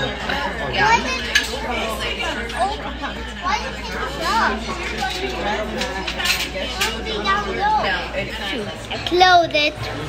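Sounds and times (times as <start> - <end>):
tableware clinking: 0.0 - 2.9, 3.9 - 8.0
restaurant chatter: 0.0 - 10.0.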